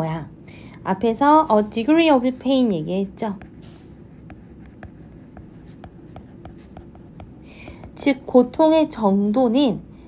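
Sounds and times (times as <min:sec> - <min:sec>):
stylus tapping on tablet: 0:03.3 - 0:08.2.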